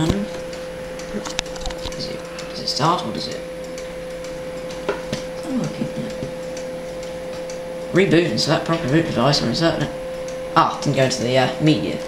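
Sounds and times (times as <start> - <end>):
computer humming: 0.0 - 12.0.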